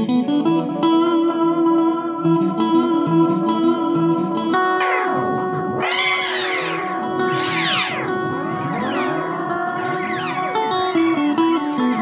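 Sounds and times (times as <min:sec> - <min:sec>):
electric guitar picking single notes: 0:00.0 - 0:12.0
gliding guitar pitch sweeps: 0:00.0 - 0:12.0.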